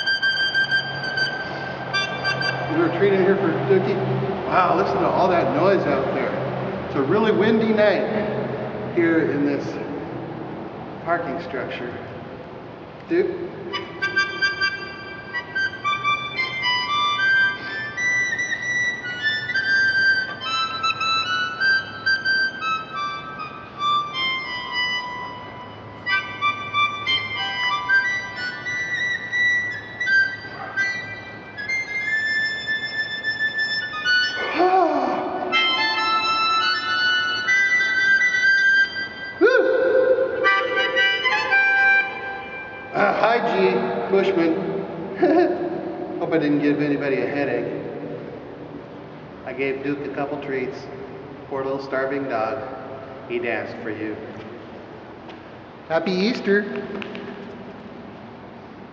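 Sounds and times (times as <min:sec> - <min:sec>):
harmonica playing blues: 0:00.0 - 0:09.7, 0:13.2 - 0:46.8.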